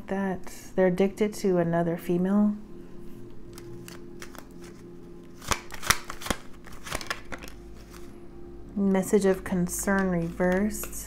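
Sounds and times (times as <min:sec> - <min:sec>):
faint steady hum: 0:00.0 - 0:11.0
card clicks: 0:03.5 - 0:08.1
cards being shuffled: 0:03.5 - 0:08.2, 0:09.8 - 0:11.0.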